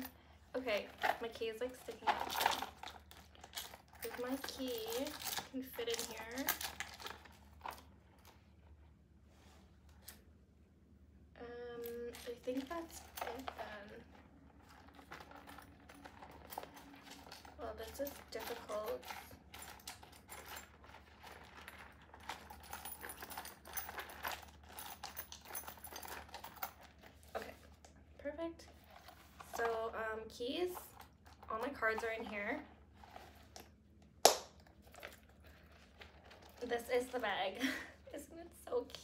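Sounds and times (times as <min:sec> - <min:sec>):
key clicks and bag rustles: 0:00.0 - 0:08.4, 0:11.8 - 0:27.8, 0:28.6 - 0:33.8, 0:34.6 - 0:39.0
low steady hum: 0:00.0 - 0:39.0.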